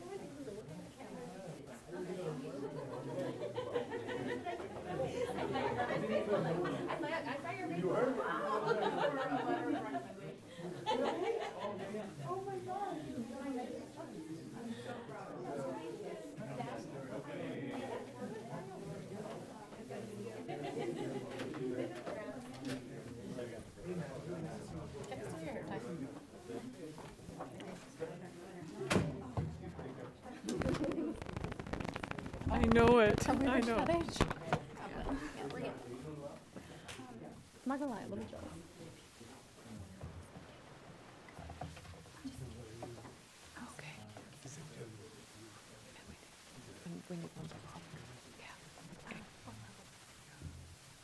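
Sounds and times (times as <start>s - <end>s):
murmur of people talking: 0.0s - 51.0s
overlapping chatter: 0.0s - 51.0s.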